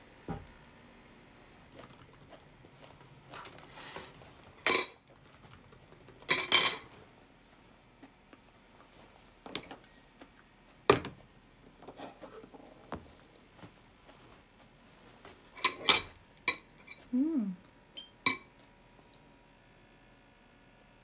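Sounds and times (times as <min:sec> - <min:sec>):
cutlery clinking against a dish: 0:06.3 - 0:06.9, 0:15.5 - 0:17.1, 0:18.0 - 0:18.5.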